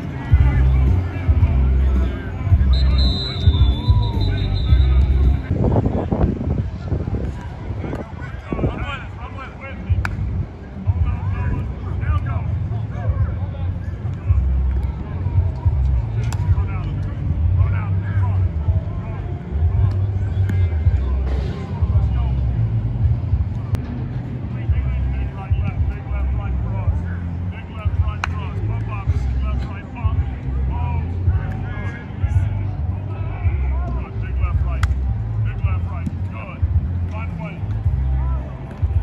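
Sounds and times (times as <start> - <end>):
distant shouts and chatter: 0.0 - 39.0
wind rumbling on microphone: 4.8 - 13.7.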